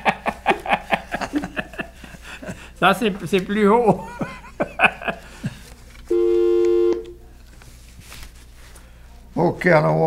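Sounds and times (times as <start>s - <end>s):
two-note telephone tone: 6.1s - 7.2s.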